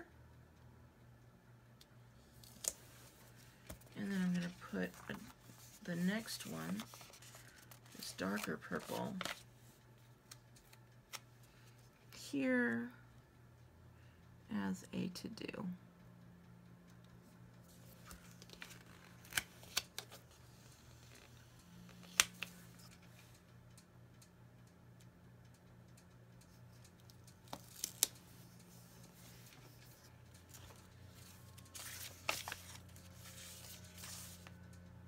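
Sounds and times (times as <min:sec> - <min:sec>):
low steady hum: 0:00.0 - 0:35.0
paper rustling: 0:02.5 - 0:09.4, 0:27.5 - 0:34.5.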